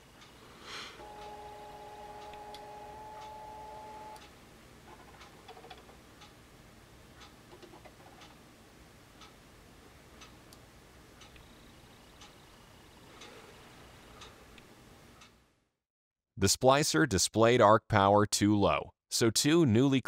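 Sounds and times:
faint irregular ticks: 11.2s - 12.4s.

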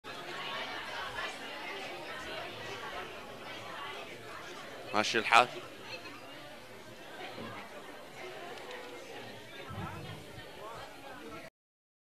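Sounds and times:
murmur of voices: 0.1s - 11.5s.

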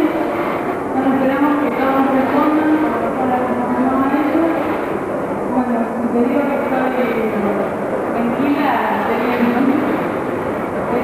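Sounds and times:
woman speaking into microphone: 0.0s - 4.9s, 5.5s - 10.1s, 10.8s - 11.0s
steady background noise: 0.0s - 11.0s.

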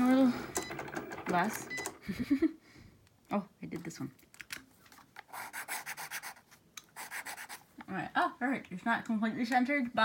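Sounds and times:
paper scratching and rubbing: 5.2s - 7.7s.

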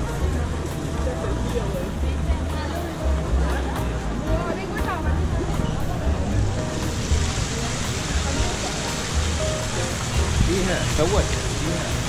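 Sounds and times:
faint crowd voices: 0.0s - 12.0s
fountain water splashing: 0.0s - 12.0s.

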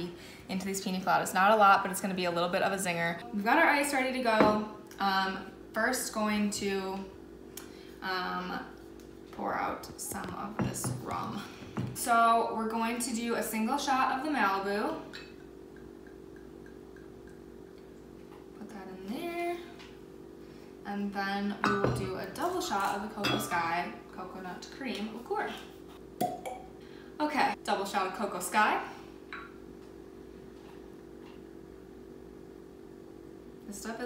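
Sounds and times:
faint steady hum: 0.0s - 34.0s.

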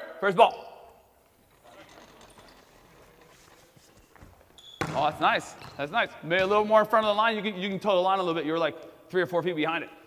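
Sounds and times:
faint knocks and shuffles: 1.2s - 4.6s.

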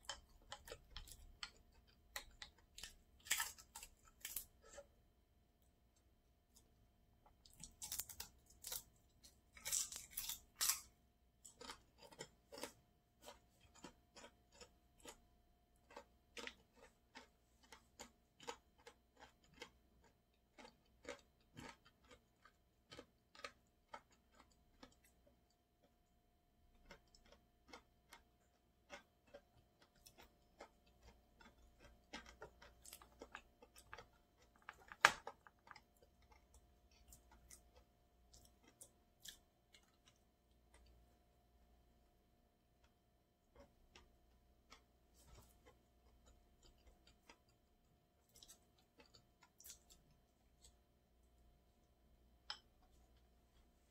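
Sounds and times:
crunchy bites: 0.0s - 4.9s, 7.4s - 15.2s, 26.7s - 41.0s
person chewing food: 0.0s - 53.9s.

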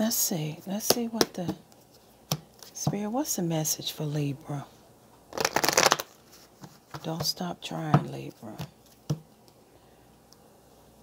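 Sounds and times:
deck of cards shuffling: 5.3s - 7.2s.

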